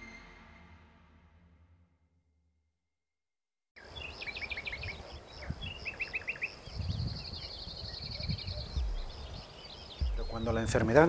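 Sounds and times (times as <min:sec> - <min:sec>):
bird trill: 0:03.8 - 0:11.0
songbirds chirping: 0:03.8 - 0:11.0.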